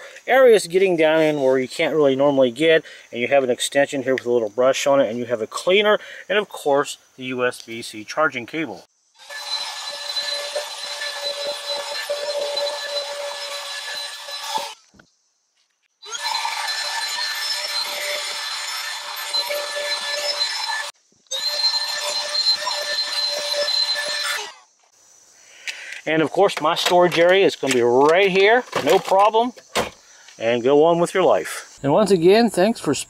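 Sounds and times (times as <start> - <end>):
handheld vacuum motor whine: 9.2 - 15.0, 16.0 - 24.6.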